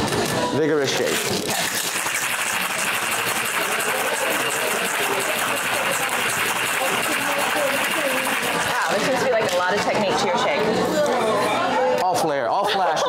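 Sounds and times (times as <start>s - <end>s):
ice rattling in cocktail shaker: 0.8s - 9.6s.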